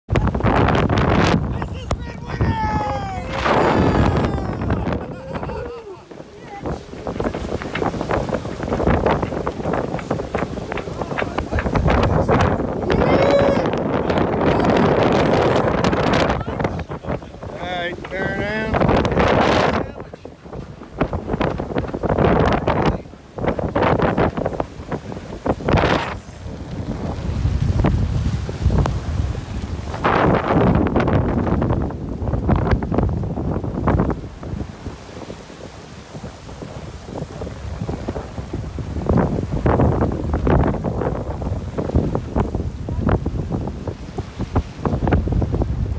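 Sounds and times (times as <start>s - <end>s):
waves rushing along hull: 0.1s - 45.9s
wind buffeting microphone: 0.1s - 45.9s.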